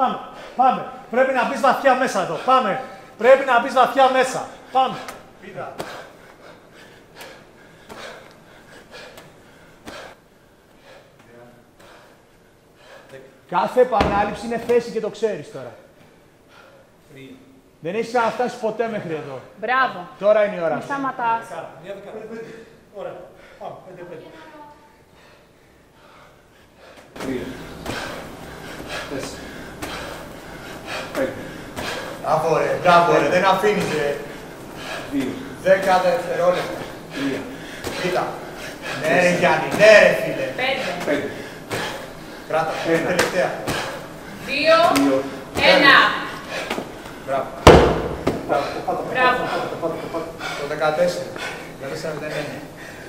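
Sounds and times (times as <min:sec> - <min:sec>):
man breathing hard: 0:05.8 - 0:11.2, 0:25.0 - 0:32.4, 0:33.8 - 0:39.5, 0:40.6 - 0:43.0, 0:46.2 - 0:47.3, 0:48.3 - 0:53.0
medicine ball thuds: 0:14.0 - 0:14.9, 0:47.6 - 0:48.6.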